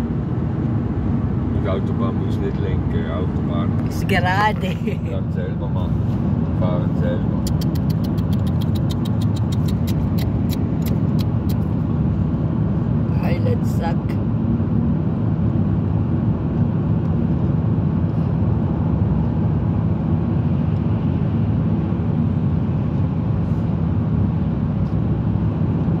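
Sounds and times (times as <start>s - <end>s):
truck engine and tyre rumble: 0.0s - 26.0s.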